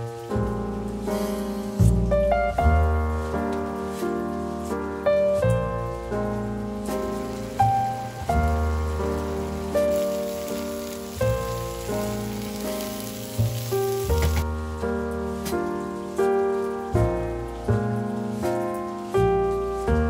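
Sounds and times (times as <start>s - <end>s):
food sizzling in a frying pan: 0.0s - 20.0s
soft piano music: 0.0s - 20.0s.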